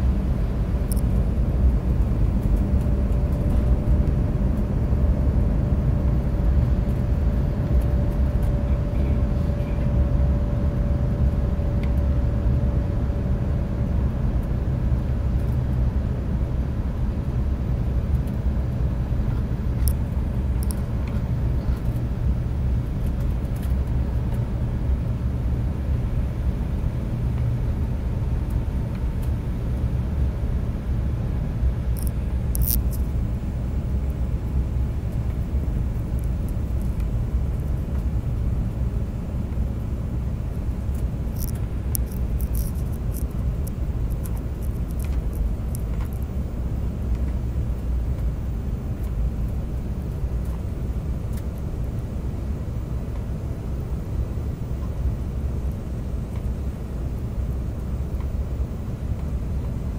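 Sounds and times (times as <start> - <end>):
airliner engine rumble in cabin: 0.0 - 59.9
faint high ticks: 32.0 - 33.1, 40.9 - 46.3.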